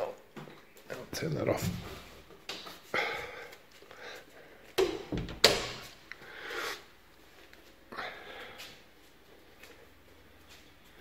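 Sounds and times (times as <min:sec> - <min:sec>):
door handling noise: 0:04.8 - 0:05.9.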